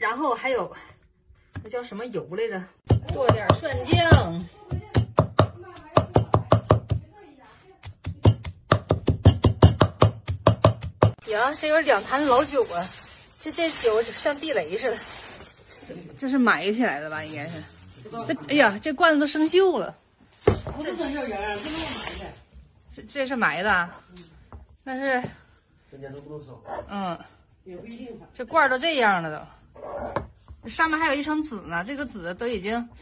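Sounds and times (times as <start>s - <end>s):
cleaver chopping on wooden board: 8.0s - 11.2s.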